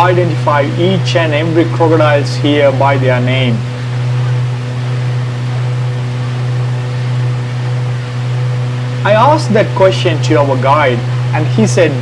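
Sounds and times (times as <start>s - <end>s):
boat engine droning: 0.0s - 12.0s
faint steady hum: 0.0s - 12.0s.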